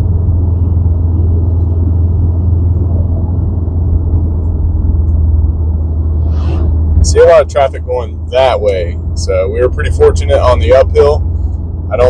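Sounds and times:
car engine drone: 0:00.0 - 0:12.0
tyre road rumble: 0:00.0 - 0:12.0.

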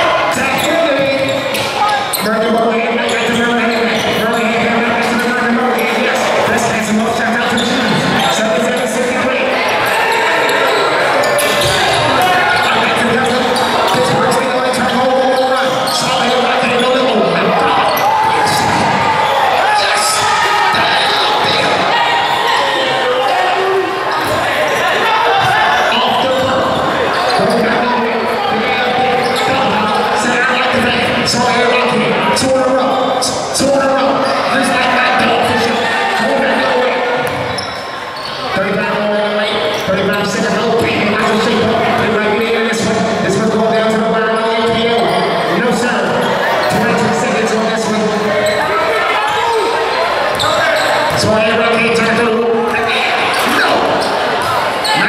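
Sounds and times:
voices echoing in hall: 0:00.0 - 0:55.0.

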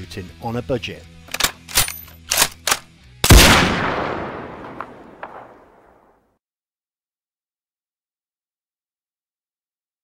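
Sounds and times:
sharp clicks: 0:01.3 - 0:02.9
loud gunshot-like bang with echo: 0:03.3 - 0:05.7.

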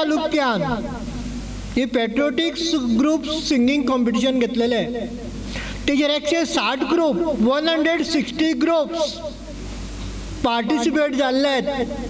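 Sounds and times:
man speaking into a microphone: 0:00.0 - 0:01.2, 0:01.8 - 0:09.6, 0:10.4 - 0:12.0.

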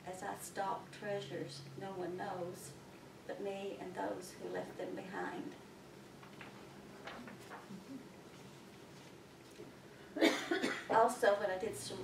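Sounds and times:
person coughing: 0:10.2 - 0:10.9.

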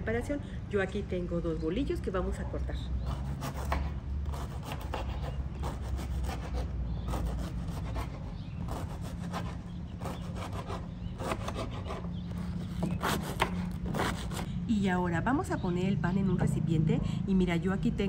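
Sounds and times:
knife sawing through bread: 0:03.0 - 0:14.5.

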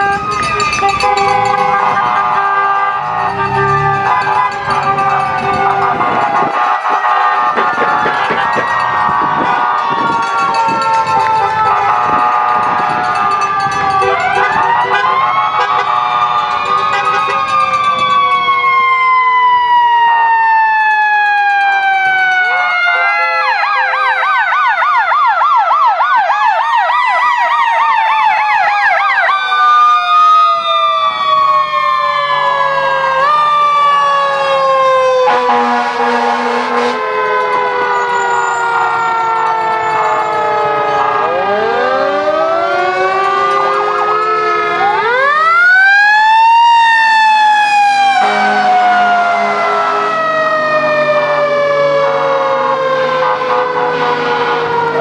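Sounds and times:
yelping siren warble: 0:00.0 - 0:21.2, 0:37.0 - 0:55.0
fire engine sirens wailing: 0:00.0 - 0:55.0.

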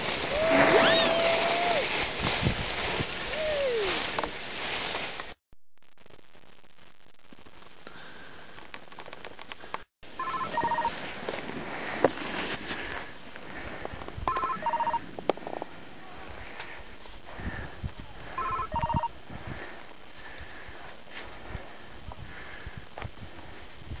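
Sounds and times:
skis rushing over snow: 0:00.0 - 0:05.4, 0:10.2 - 0:21.9
telephone ringing: 0:10.2 - 0:10.9, 0:14.3 - 0:15.0, 0:18.4 - 0:19.1.

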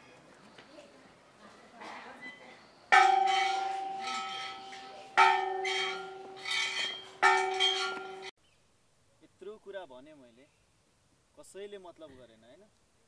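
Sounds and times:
bell ringing: 0:02.9 - 0:08.3.

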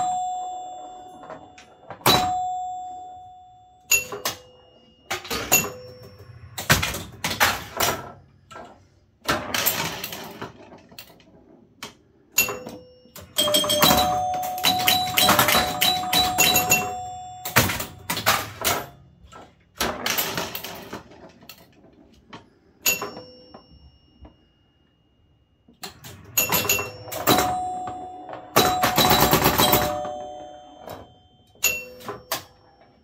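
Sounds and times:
pinball chime bells ringing: 0:00.0 - 0:08.2, 0:12.3 - 0:19.3, 0:22.8 - 0:24.7, 0:25.8 - 0:33.0
pinball machine clicking and clatter: 0:00.0 - 0:23.7, 0:25.7 - 0:33.0.

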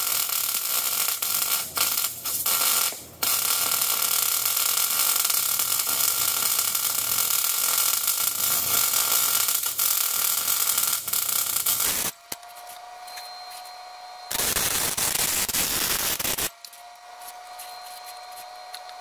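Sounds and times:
welder arc crackling: 0:00.0 - 0:12.4, 0:14.3 - 0:16.6.

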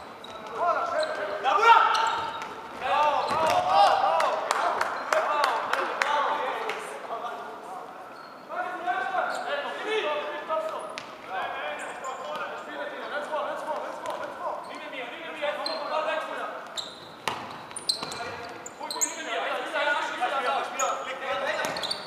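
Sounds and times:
players shouting in sports hall: 0:00.5 - 0:06.9.

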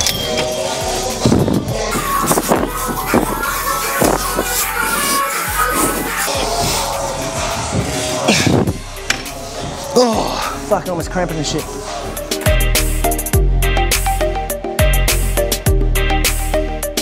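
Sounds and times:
background music with deep bass: 0:00.0 - 0:17.0.

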